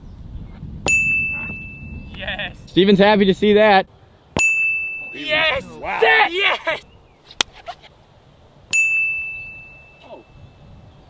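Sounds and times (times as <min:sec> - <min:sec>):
bell-like metallic ding: 0:00.9 - 0:02.0, 0:04.4 - 0:05.5, 0:08.7 - 0:10.3.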